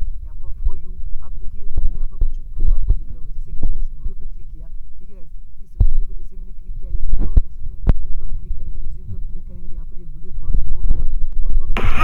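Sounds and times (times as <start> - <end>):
loud low hum: 11.7 - 12.0.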